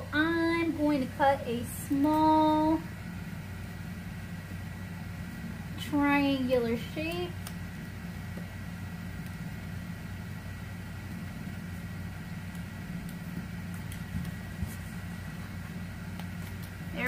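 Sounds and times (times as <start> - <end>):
fan humming with high whine: 0.0 - 17.0.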